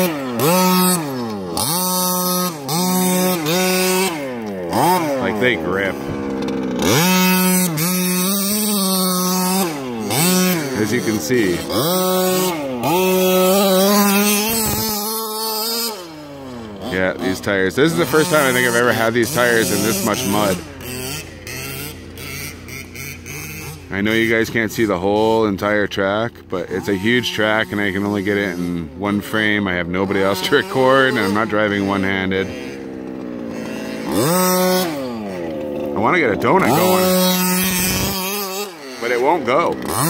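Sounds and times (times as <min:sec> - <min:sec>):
small two-stroke engine revving: 0:00.0 - 0:40.0.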